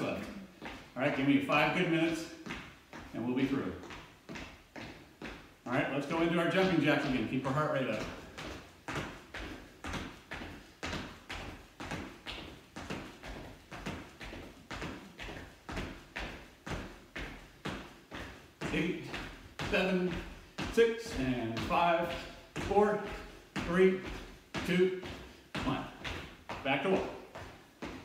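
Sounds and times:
feet thudding on wooden floor: 8.0 - 28.0
person speaking: 18.6 - 26.0, 26.6 - 27.2.

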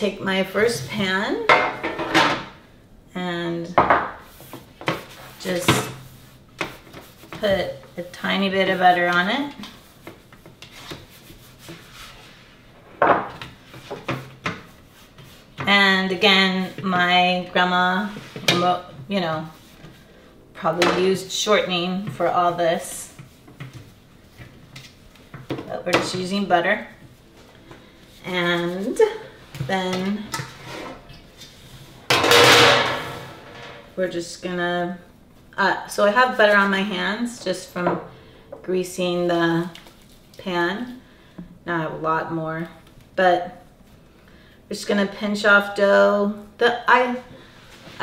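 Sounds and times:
hands rubbing butter on metal pan: 4.3 - 12.6, 13.7 - 17.2
metal baking pan clattering: 32.1 - 33.8.

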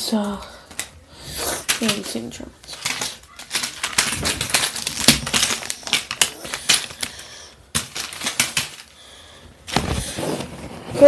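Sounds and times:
plastic lego pieces clicking: 1.5 - 7.2, 7.8 - 9.0.

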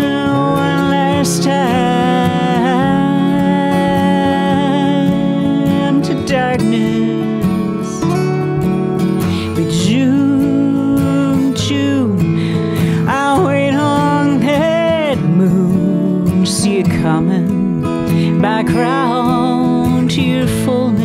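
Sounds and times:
gliding melody line: 0.0 - 12.1
acoustic guitars playing: 0.0 - 21.0.

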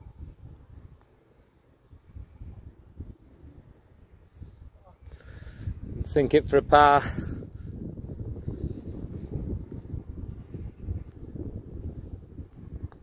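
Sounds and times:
wind buffeting microphone: 0.0 - 1.1, 1.7 - 13.0.

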